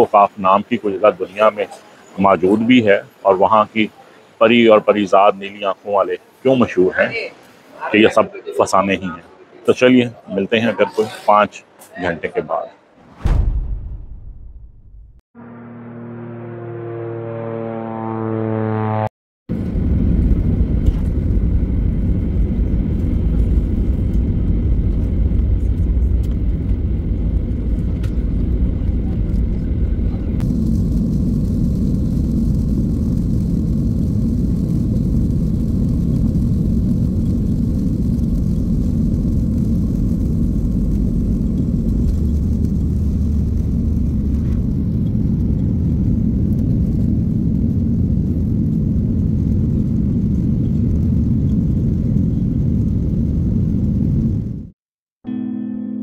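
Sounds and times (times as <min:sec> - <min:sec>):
jet cabin engine rumble: 0:19.5 - 0:54.8.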